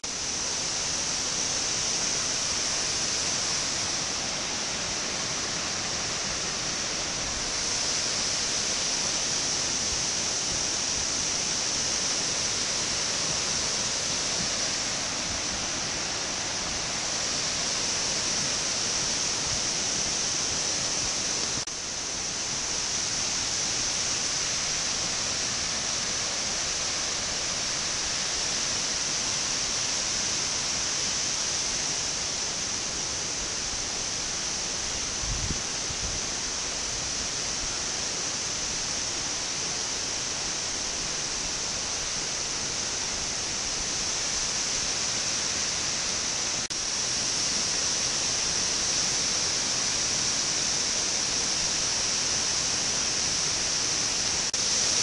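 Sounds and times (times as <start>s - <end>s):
waterfall rushing: 0.0s - 55.0s.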